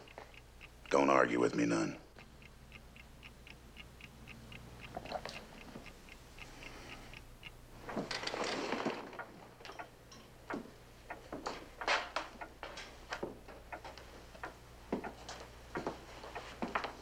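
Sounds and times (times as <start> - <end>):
clock ticking: 0.0 - 17.0
rustling scrape of movement: 8.1 - 9.2.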